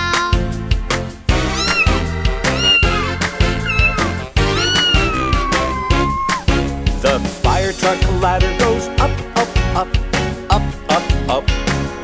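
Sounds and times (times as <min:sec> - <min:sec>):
bright children's music: 0:00.0 - 0:12.0
cartoon cat meowing: 0:01.5 - 0:06.5.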